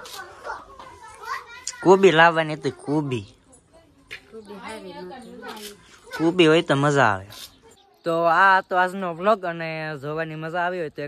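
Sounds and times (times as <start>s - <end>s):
child speaking softly: 0.0s - 2.0s.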